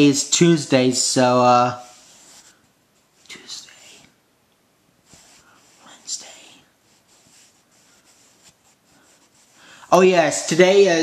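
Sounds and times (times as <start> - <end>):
man whispering: 3.2 - 4.2, 5.4 - 6.8.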